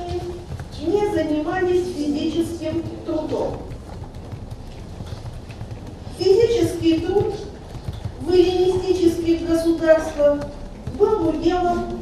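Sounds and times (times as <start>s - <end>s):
computer keyboard typing: 0.0s - 12.0s.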